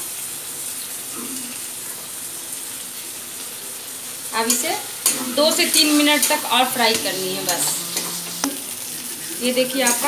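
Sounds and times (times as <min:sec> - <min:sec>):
spices sizzling in oil: 0:00.0 - 0:10.0.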